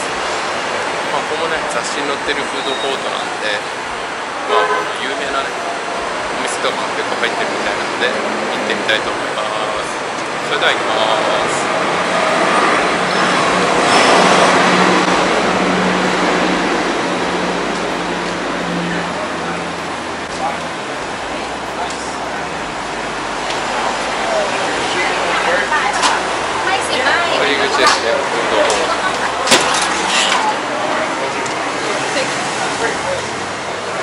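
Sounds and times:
city street traffic: 0.0s - 34.0s
vehicle passing: 0.0s - 34.0s
steady low hum: 3.3s - 27.3s.

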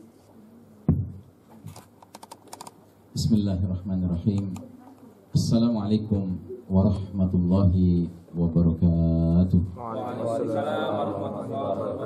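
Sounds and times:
thump: 0.9s - 1.2s
laptop keyboard keys clicking: 1.7s - 2.8s.

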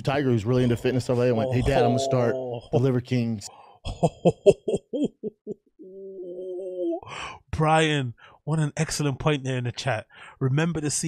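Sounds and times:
man humming: 0.8s - 2.9s, 3.9s - 7.1s
man laughing: 1.2s - 3.0s, 3.8s - 7.0s.

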